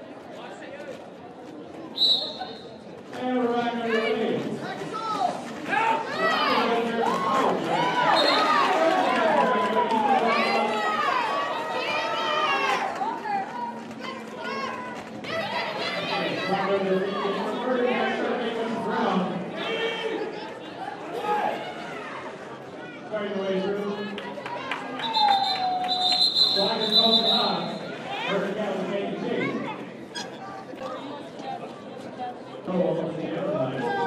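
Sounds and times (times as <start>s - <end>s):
crowd chatter in large hall: 0.0s - 34.0s.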